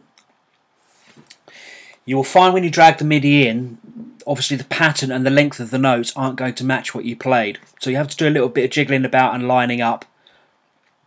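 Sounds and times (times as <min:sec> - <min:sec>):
soft breath-like hiss: 0:00.8 - 0:02.1.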